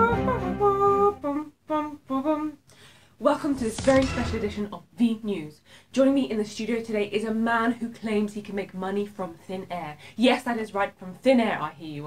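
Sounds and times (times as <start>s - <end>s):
person humming a melody: 0.0s - 2.6s.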